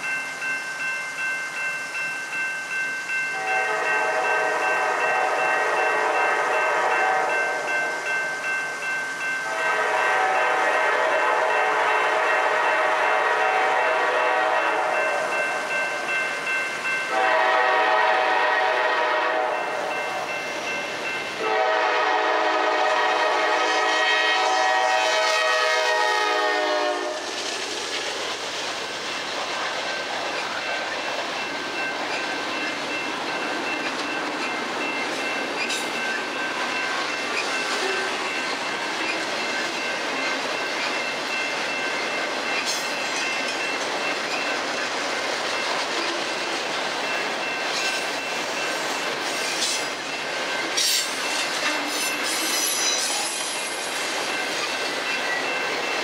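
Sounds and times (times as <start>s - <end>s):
train rumble: 0.0s - 56.0s
locomotive air horn blasts: 3.4s - 7.7s, 9.4s - 15.3s, 17.1s - 19.6s, 21.4s - 27.3s.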